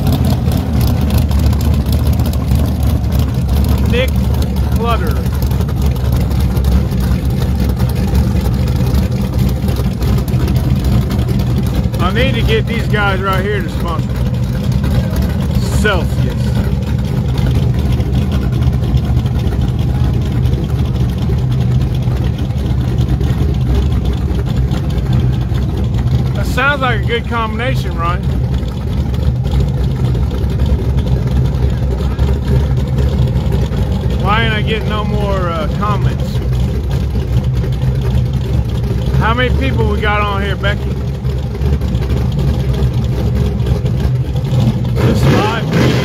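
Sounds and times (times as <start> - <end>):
race car engines idling loudly: 0.0 - 46.0.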